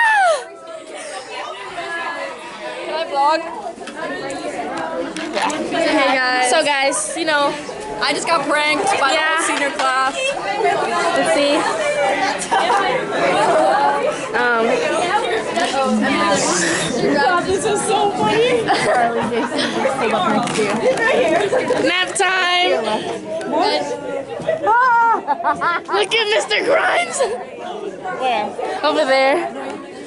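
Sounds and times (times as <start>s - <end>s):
background chatter of voices: 0.0s - 30.0s.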